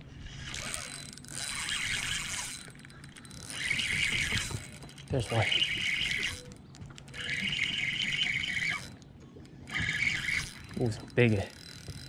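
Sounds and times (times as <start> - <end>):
fishing reel whirring: 0.0 - 12.0.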